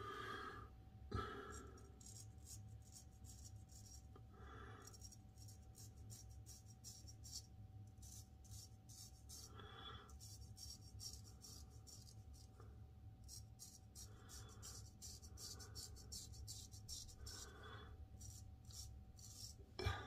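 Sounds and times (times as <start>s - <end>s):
steady low hum: 0.0s - 20.0s
razor scraping stubble: 13.2s - 17.6s, 18.2s - 19.7s.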